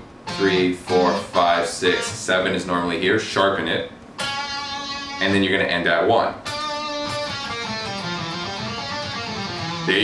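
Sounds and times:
electric guitar playing a scale: 0.2 - 2.4, 4.2 - 5.4, 6.4 - 10.0
man's voice: 0.4 - 3.9.

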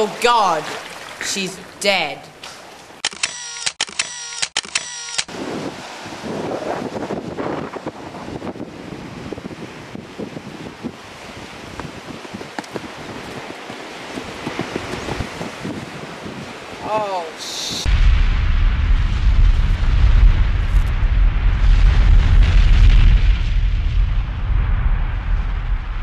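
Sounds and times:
sea washing: 0.0 - 3.0, 5.3 - 20.6
wind buffeting the microphone: 5.3 - 26.0.

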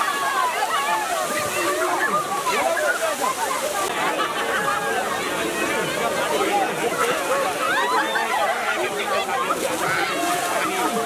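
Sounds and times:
crowd chatter and shouts: 0.0 - 11.0
water jet splashing on pavement: 0.0 - 11.0.

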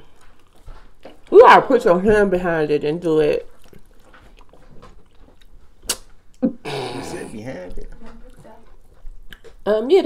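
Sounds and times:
mouth clicks: 5.8 - 7.0.

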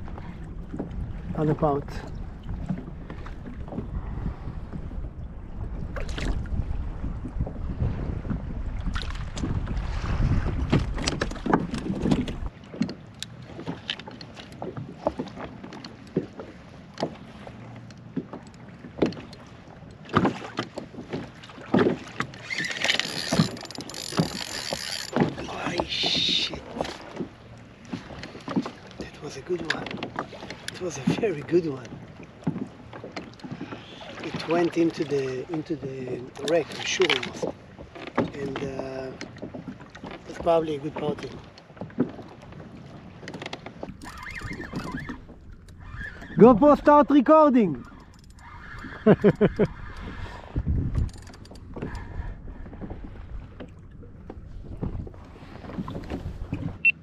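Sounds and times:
wind rumbling on microphone: 0.0 - 12.6, 42.2 - 57.0
small waves slapping kayak hull: 0.0 - 57.0.

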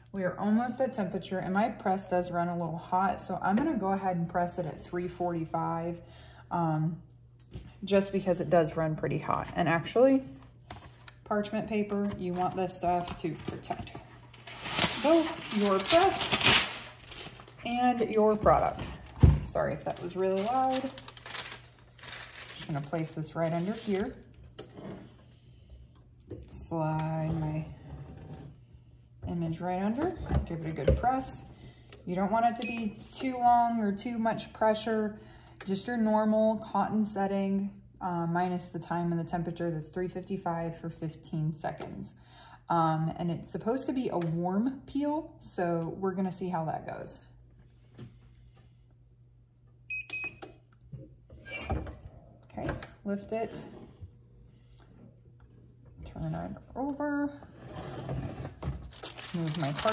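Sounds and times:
paper rustling: 13.5 - 18.0, 18.6 - 24.2, 58.8 - 59.9.

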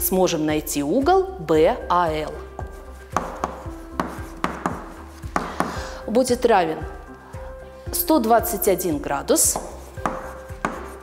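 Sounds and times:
chalk tapping and scraping on chalkboard: 2.3 - 5.9, 9.4 - 11.0.

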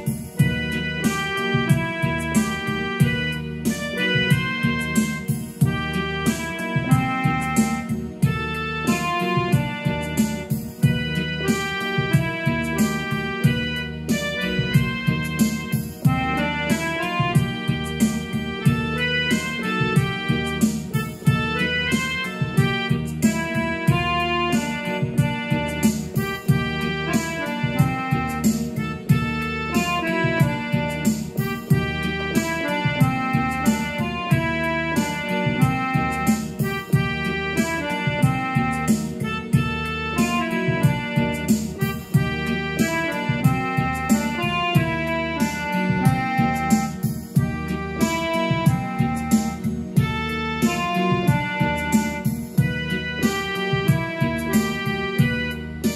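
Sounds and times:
keyboard single-note melody: 0.0 - 55.9
regular beat: 0.0 - 55.9
sustained keyboard chords: 0.0 - 55.9.

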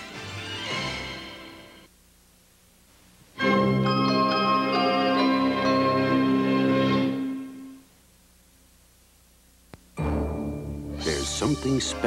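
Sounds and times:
held chord of theme music: 3.4 - 7.8, 10.0 - 12.0.

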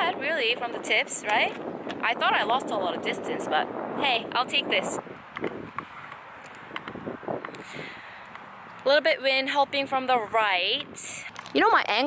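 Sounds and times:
wind noise on microphone: 0.0 - 12.0.

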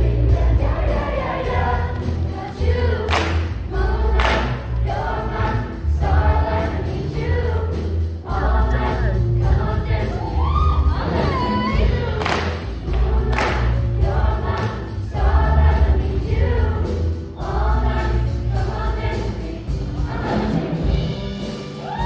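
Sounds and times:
pulsing bass beat: 0.0 - 20.7
choir singing upbeat song: 0.0 - 22.0.

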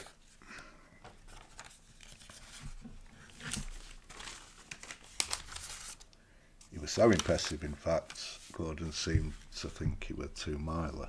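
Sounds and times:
notebook pages rustling: 1.0 - 9.8.

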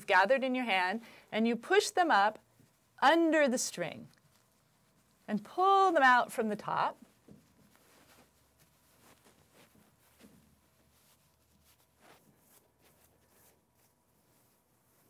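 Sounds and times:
soft rustles of silk: 0.0 - 15.0.

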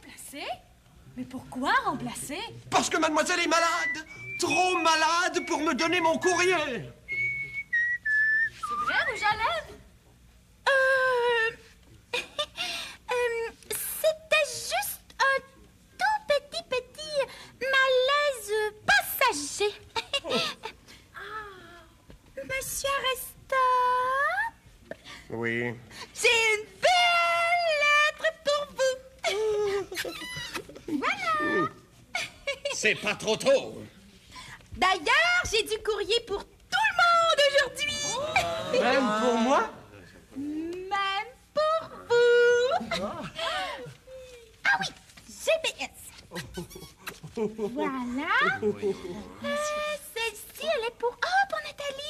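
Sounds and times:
person whistling: 3.8 - 5.7, 7.1 - 9.1.

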